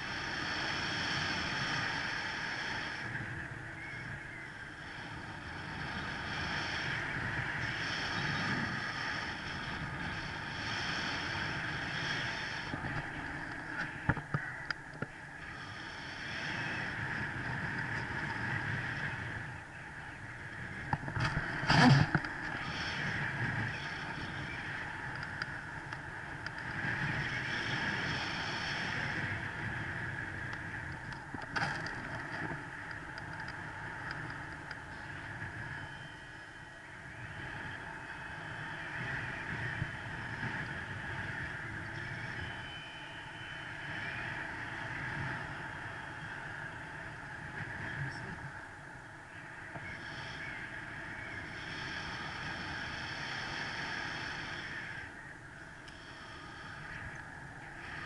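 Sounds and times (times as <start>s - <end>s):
airflow over microphone: 0.0s - 58.0s.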